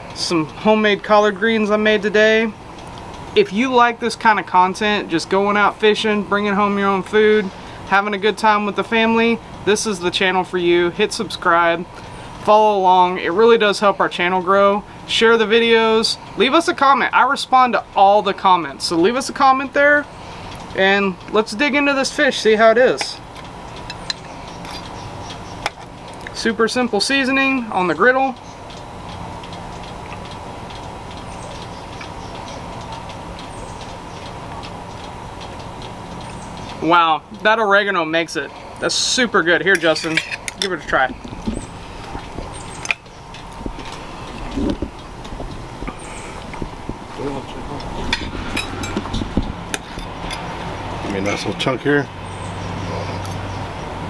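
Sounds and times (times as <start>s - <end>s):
steady background hiss: 0.0s - 54.0s
steady low hum: 0.0s - 54.0s.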